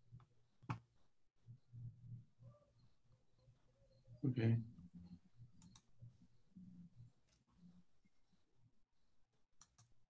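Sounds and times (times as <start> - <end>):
faint clicks: 5.6 - 5.9, 9.6 - 10.0.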